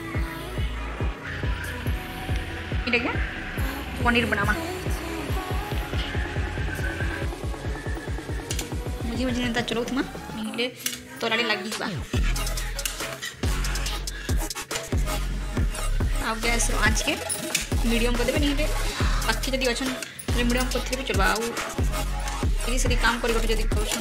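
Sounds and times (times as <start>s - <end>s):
music with singing voice: 0.0s - 24.0s.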